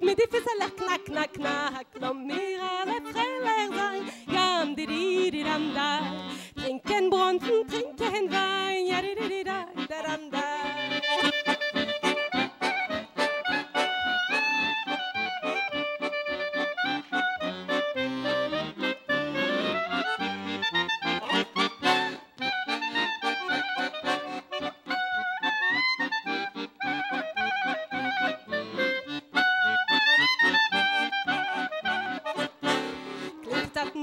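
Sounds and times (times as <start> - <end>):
accordion accompaniment: 0.0 - 34.0
clarinet melody: 0.0 - 34.0.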